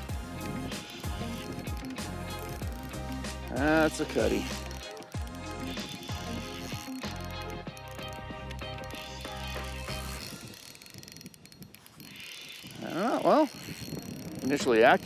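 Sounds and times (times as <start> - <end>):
fishing reel gears whirring: 0.0 - 15.0.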